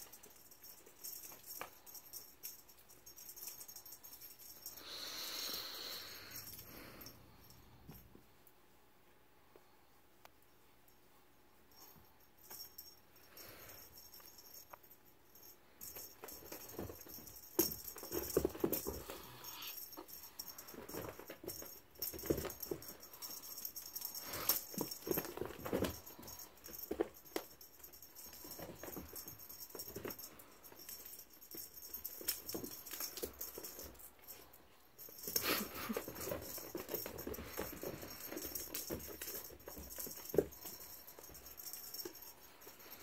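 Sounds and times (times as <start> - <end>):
wand toy jingling: 0.0 - 7.6, 11.7 - 43.0.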